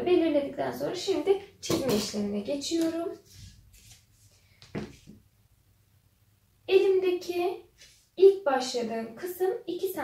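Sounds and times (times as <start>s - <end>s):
ruler rustling on fabric: 3.2s - 5.2s.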